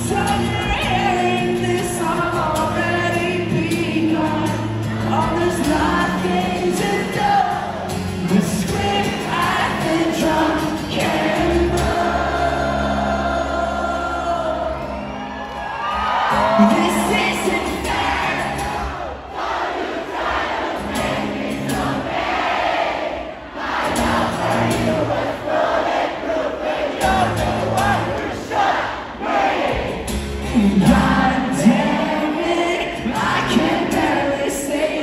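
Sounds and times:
strummed acoustic guitar: 0.0 - 19.0, 20.3 - 22.9, 23.7 - 25.9, 26.8 - 35.0
crowd singing: 0.0 - 35.0.

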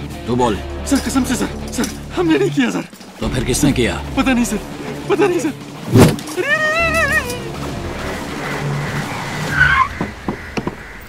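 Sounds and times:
tyres squealing: 0.8 - 11.0.

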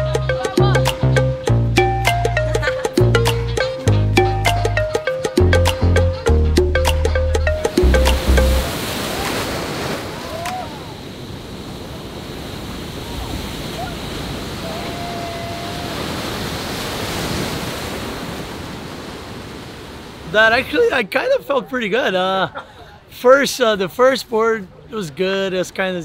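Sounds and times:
music with heavy bass: 0.0 - 8.7
waves breaking in a wave pool: 7.5 - 26.0.

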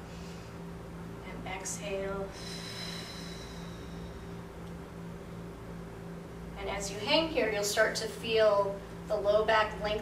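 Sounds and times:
slow breathy exhale: 2.3 - 4.5.

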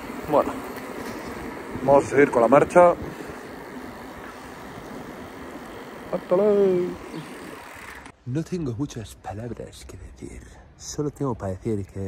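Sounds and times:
bicycle tyres on wet road: 0.0 - 8.2.

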